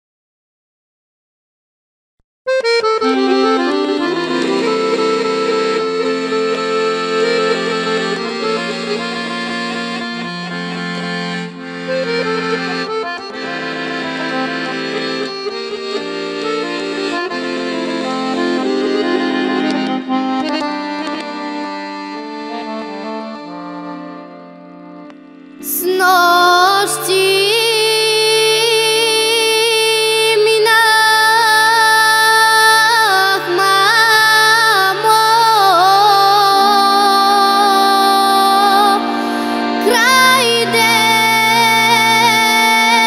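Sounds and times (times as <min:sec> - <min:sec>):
accordion playing: 0:02.5 - 0:43.0
person singing: 0:25.6 - 0:43.0.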